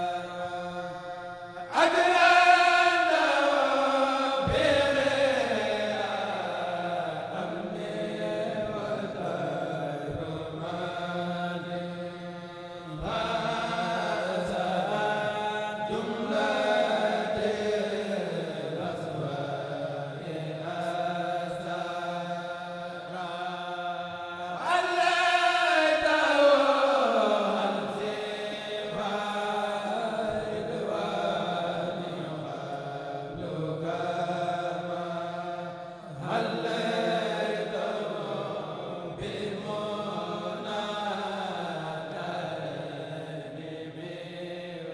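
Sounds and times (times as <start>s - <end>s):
male voices chanting together: 0.0s - 44.9s.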